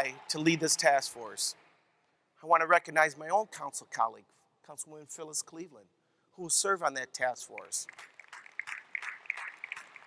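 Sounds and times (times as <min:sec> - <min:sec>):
light scattered applause: 0:00.0 - 0:01.3, 0:07.5 - 0:10.0.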